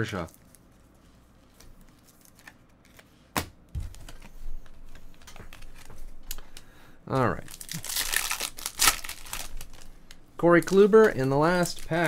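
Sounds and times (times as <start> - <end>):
cards tapping and rustling: 1.6 - 6.5.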